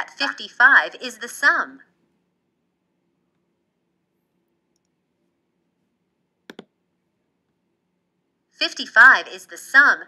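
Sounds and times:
faint room hum: 0.0s - 10.0s
computer mouse click: 6.5s - 6.7s.

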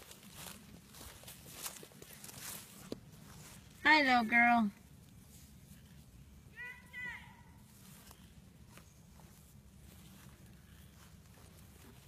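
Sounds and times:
footsteps through grass: 0.0s - 12.0s.

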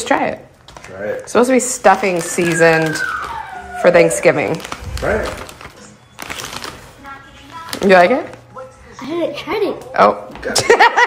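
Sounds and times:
foil bag rustling: 0.6s - 8.5s.

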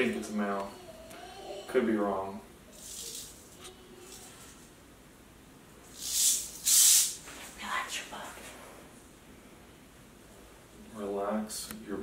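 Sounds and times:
rattlesnake hissing: 5.9s - 7.2s.

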